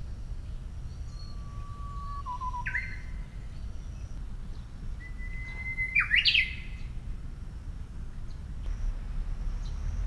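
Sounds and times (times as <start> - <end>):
songbird singing: 0.0 - 10.0.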